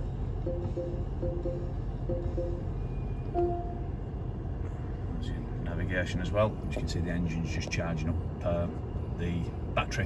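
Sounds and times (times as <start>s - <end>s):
faint car radio music: 0.0s - 4.5s
car engine idling hum: 0.0s - 10.0s
short electronic beep: 0.5s - 3.9s.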